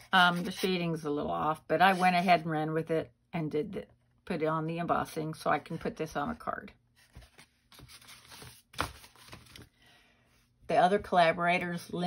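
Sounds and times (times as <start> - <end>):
paper and hands rustling: 7.0 - 9.7.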